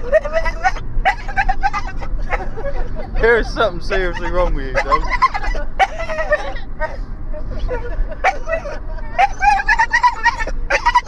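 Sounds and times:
dog whining and warbling: 0:00.0 - 0:11.0.

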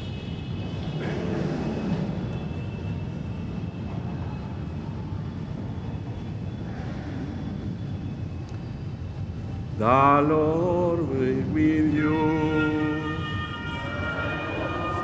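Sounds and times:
faint high steady tones: 0:01.6 - 0:15.0.

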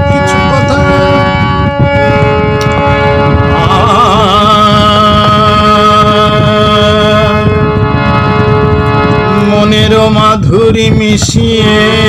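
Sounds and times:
harmonium chords: 0:00.0 - 0:12.0
rough low noise: 0:00.0 - 0:12.0.

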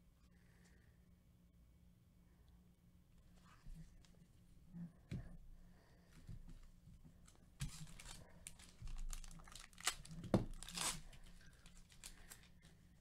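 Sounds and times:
wrapper tearing and crinkling: 0:07.7 - 0:12.5.

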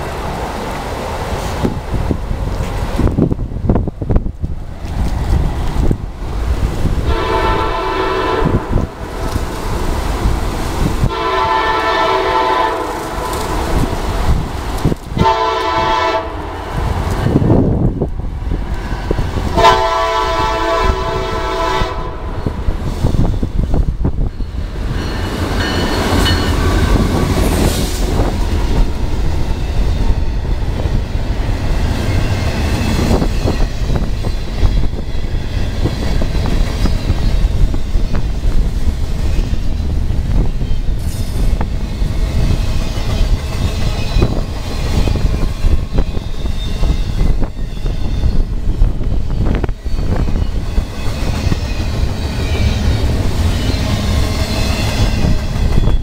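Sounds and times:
freight train rumbling past: 0:00.0 - 0:56.0
wind buffeting microphone: 0:00.0 - 0:56.0
train horn blasts: 0:07.0 - 0:09.0, 0:11.0 - 0:13.5, 0:15.2 - 0:16.6, 0:19.5 - 0:22.5.

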